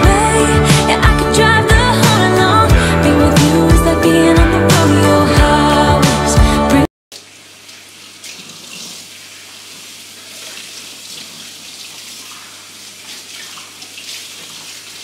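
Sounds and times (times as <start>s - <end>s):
glasses being rinsed: 7.1s - 15.0s.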